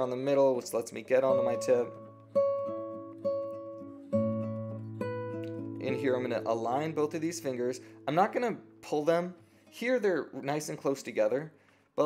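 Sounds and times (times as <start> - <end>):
classical guitar plucked notes: 0.0 - 10.8.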